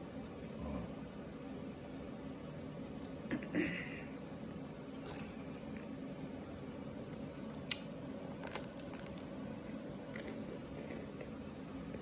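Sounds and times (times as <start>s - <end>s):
person chewing: 5.0s - 5.8s, 7.6s - 9.3s, 10.0s - 11.4s.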